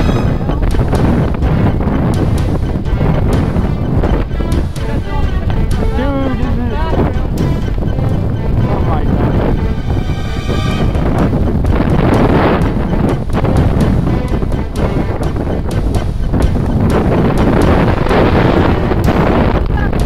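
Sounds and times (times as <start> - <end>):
music playing: 0.0 - 20.0
wind buffeting microphone: 0.0 - 20.0.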